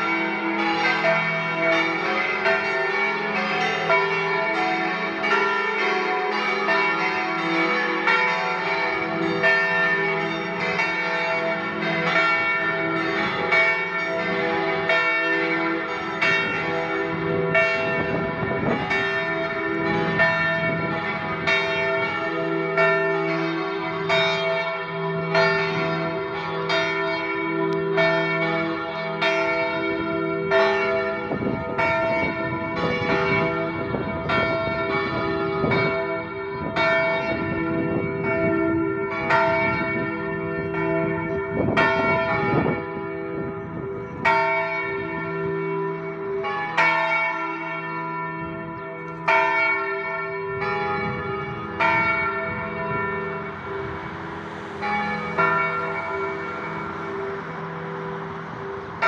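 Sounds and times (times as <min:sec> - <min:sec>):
church bells ringing: 0:00.0 - 0:59.0
lower bell: 0:00.0 - 0:59.0.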